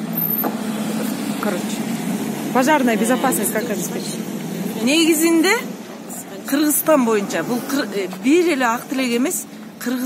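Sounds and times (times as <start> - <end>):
vehicle engine passing close: 0.0 - 9.0.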